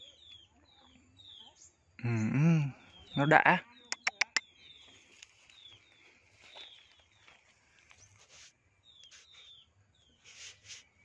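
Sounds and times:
sharp clicks: 4.0s - 4.4s.

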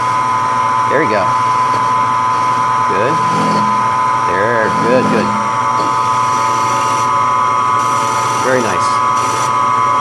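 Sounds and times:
milling machine spindle whining: 2.3s - 7.0s.

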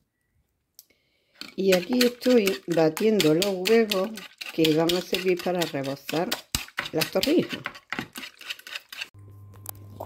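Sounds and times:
wire whisk beating eggs in bowl: 1.4s - 9.2s.

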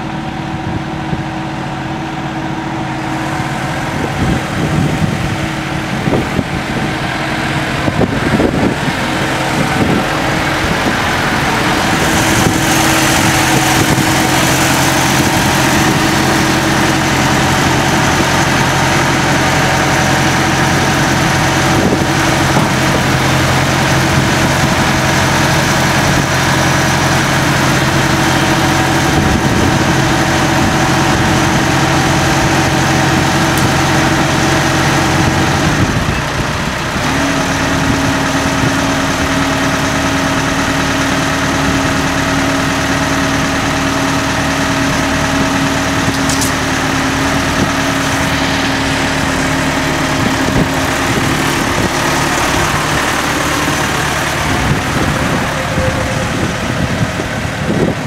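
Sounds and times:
tractor diesel engine idling: 0.0s - 58.0s.

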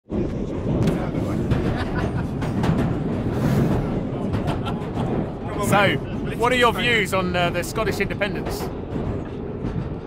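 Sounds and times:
train low rumble: 0.1s - 10.0s.

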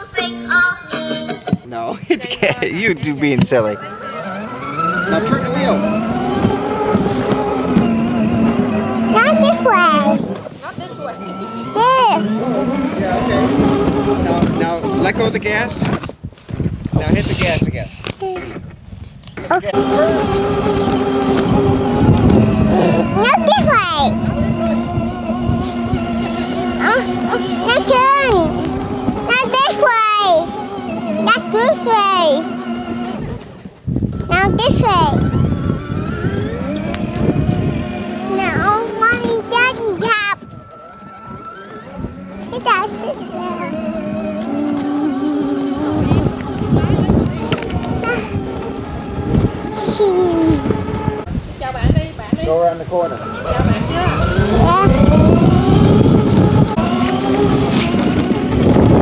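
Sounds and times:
plastic wheels rolling on grass: 2.7s - 17.8s, 19.4s - 51.7s, 53.6s - 59.0s
toy car electric motors whining: 2.8s - 16.1s, 17.0s - 18.2s, 19.4s - 51.3s, 53.0s - 59.0s.

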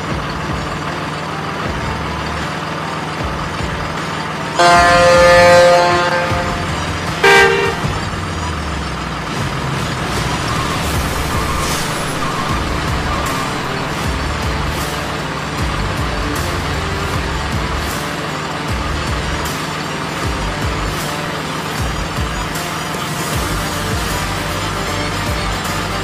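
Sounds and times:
background music: 0.0s - 26.0s
truck diesel engine running: 0.0s - 26.0s.

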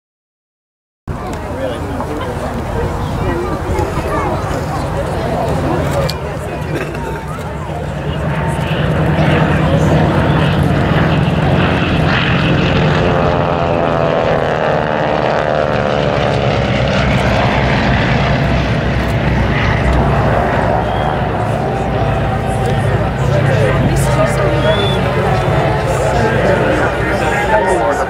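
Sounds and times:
propeller aircraft flying past: 1.1s - 28.0s.

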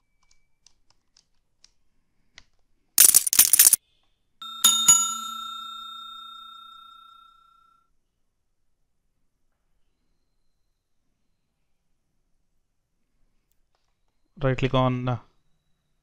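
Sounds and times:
bell ringing: 3.0s - 3.8s, 4.4s - 7.4s.

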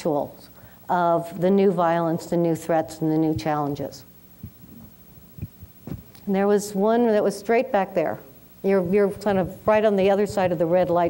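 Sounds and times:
faint low hum: 0.0s - 11.0s
soft short low thumps: 4.4s - 6.2s.

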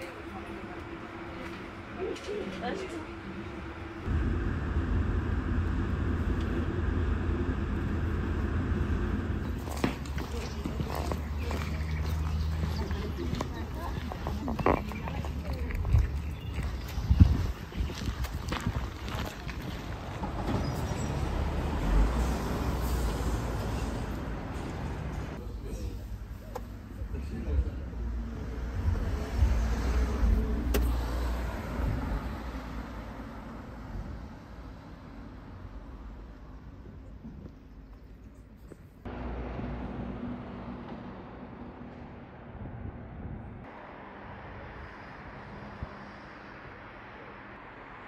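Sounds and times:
low steady hum: 2.8s - 9.6s
car passing: 19.8s - 25.4s, 39.1s - 48.0s.

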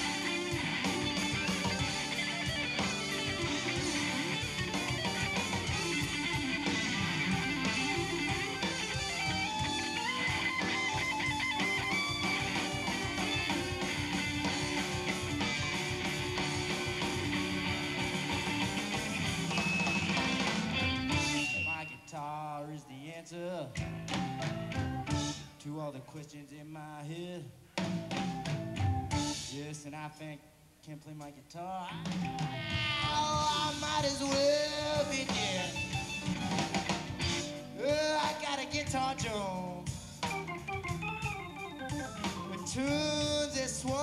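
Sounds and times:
lead electric guitar: 0.0s - 22.0s, 31.9s - 44.0s
electric blues band: 0.0s - 22.5s, 23.3s - 25.6s, 27.7s - 29.9s, 31.8s - 44.0s.

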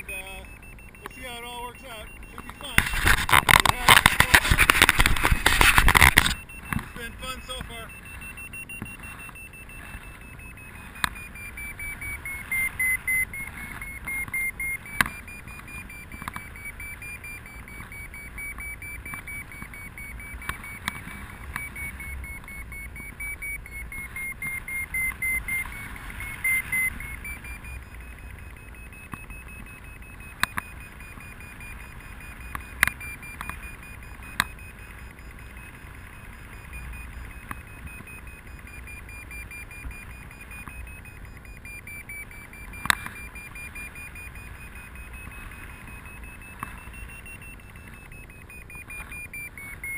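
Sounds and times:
quick pulsed beeps: 0.0s - 49.9s
variometer electronic tone: 0.0s - 49.9s
sharp clicks: 2.0s - 7.9s, 10.6s - 49.9s.

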